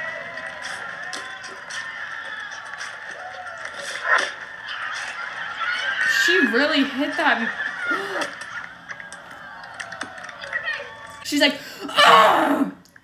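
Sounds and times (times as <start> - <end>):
crowd cheering and clapping: 0.0 - 12.2.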